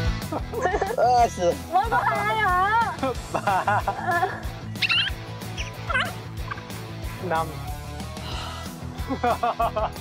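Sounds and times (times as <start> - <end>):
background music with soft beat: 0.0 - 10.0
high gliding chirps: 4.8 - 6.7.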